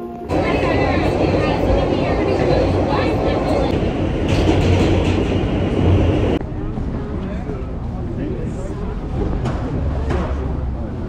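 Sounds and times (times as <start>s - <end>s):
city street noise: 0.0s - 11.0s
subway train rumbling and rattling: 0.0s - 11.0s.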